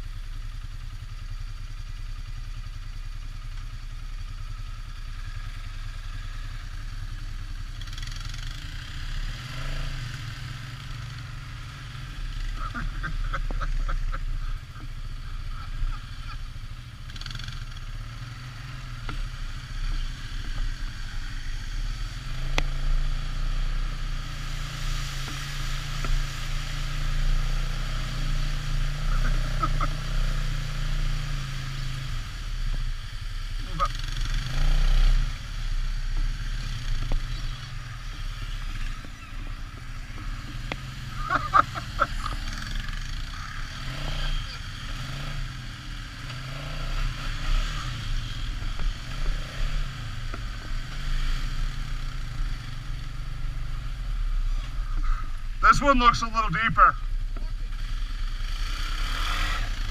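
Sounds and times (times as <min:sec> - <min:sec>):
quad engine droning: 0:00.0 - 0:59.9.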